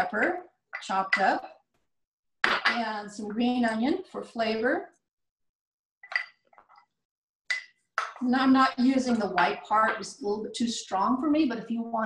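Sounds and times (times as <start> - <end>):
glass bowl clinking: 6.0 - 6.9.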